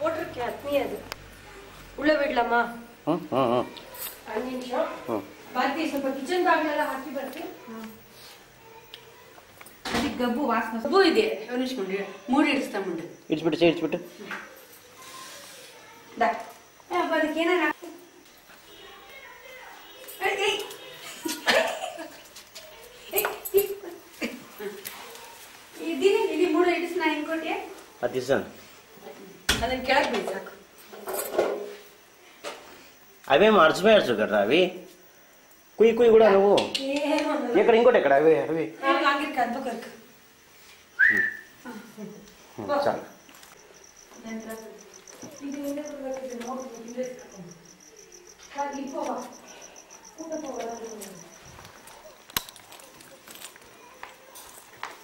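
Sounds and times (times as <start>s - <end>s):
cricket chirping: 0.0s - 55.0s.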